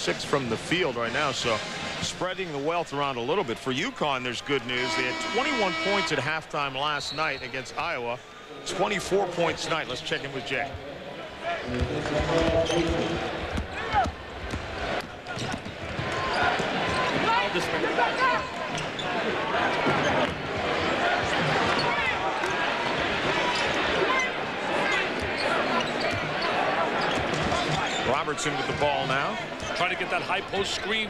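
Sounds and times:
crowd murmuring: 0:04.6 - 0:06.2
sneakers squeaking: 0:11.7 - 0:14.6, 0:23.5 - 0:28.1.

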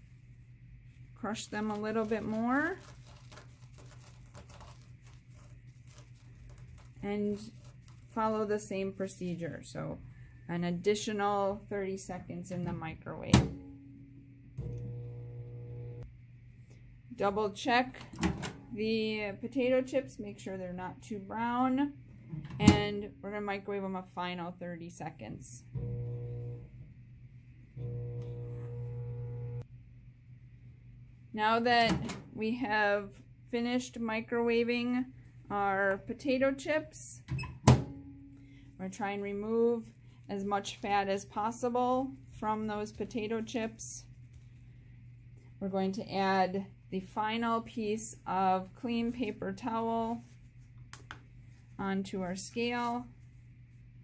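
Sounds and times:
paper towel crinkling: 0:00.0 - 0:09.4, 0:39.2 - 0:45.3, 0:48.8 - 0:54.0
low steady hum: 0:00.0 - 0:54.0
microwave oven humming: 0:13.6 - 0:16.2, 0:25.7 - 0:27.0, 0:27.6 - 0:29.8.

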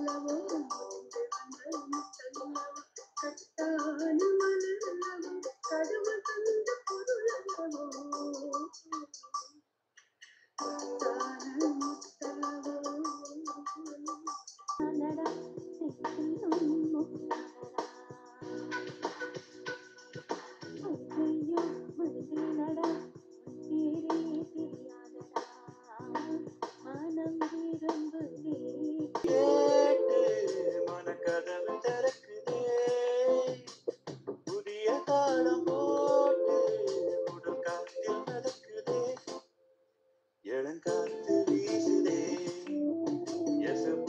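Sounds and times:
woman singing: 0:00.0 - 0:08.7, 0:10.6 - 0:18.8, 0:20.8 - 0:33.0
man singing with held notes: 0:00.0 - 0:09.2, 0:10.6 - 0:19.0, 0:23.6 - 0:33.7, 0:34.5 - 0:39.4, 0:40.4 - 0:42.8, 0:43.4 - 0:44.0.

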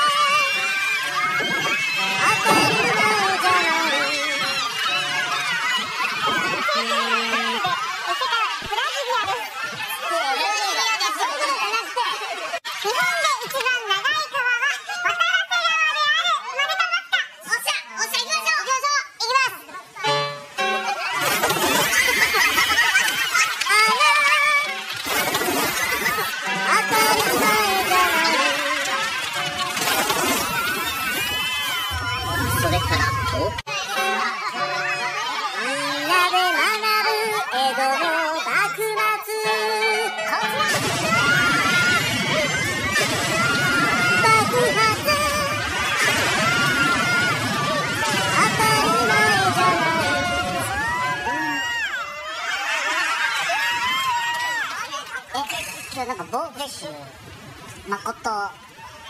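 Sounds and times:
high-pitched voices talking: 0:00.0 - 0:20.2, 0:23.1 - 0:51.8
people shouting and yelling: 0:00.0 - 0:59.0.

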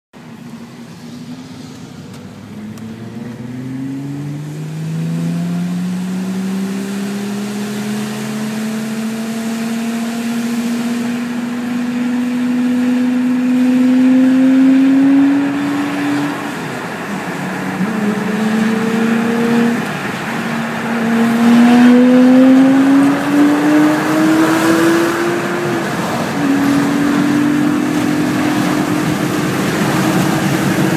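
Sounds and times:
car engine accelerating: 0:00.2 - 0:30.9
tyre and road noise: 0:00.2 - 0:30.9.

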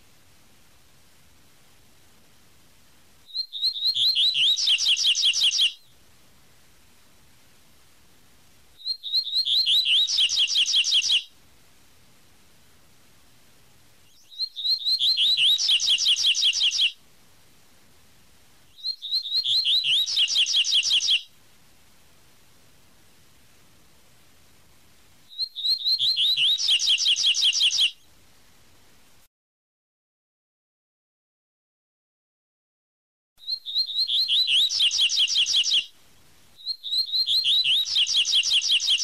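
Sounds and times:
seedeater birdsong: 0:03.3 - 0:05.9, 0:08.8 - 0:11.3, 0:14.1 - 0:17.0, 0:18.7 - 0:21.3, 0:25.3 - 0:28.0, 0:33.4 - 0:35.9, 0:36.6 - 0:39.0.

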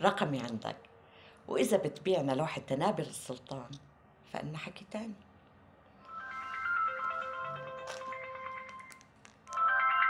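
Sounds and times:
mobile phone ringtone melody: 0:06.1 - 0:10.0.

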